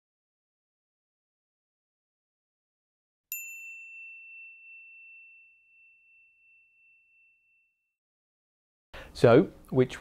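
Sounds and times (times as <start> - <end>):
high bell-like ding: 3.3 - 8.0.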